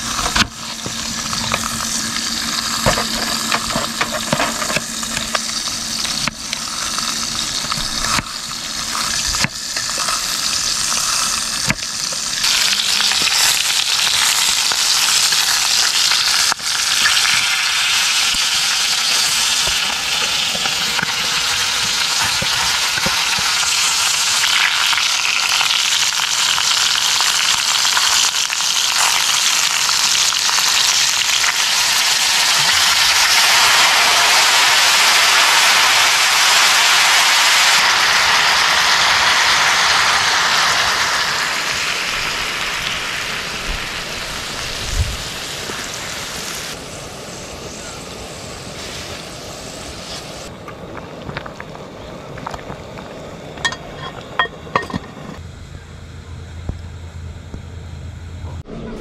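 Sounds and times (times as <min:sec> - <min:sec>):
meat sizzling in a pot: 0:00.0 - 0:54.9
wine boiling off in steam: 0:00.0 - 0:55.4.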